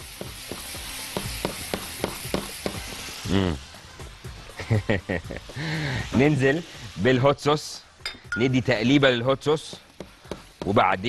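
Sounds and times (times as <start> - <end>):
sauce sizzling in saucepan: 0.0 - 11.0.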